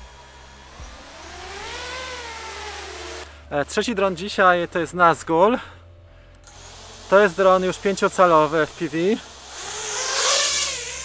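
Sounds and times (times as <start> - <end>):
drone motors and propellers whining: 0.0 - 5.2, 6.4 - 11.0.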